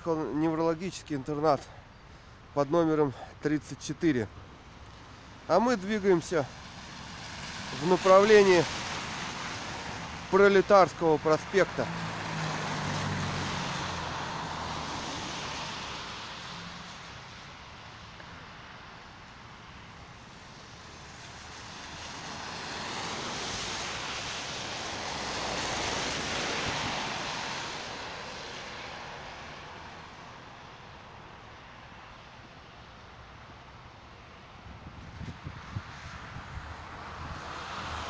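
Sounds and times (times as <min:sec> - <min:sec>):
tyres hissing on wet road: 0:04.6 - 0:38.0.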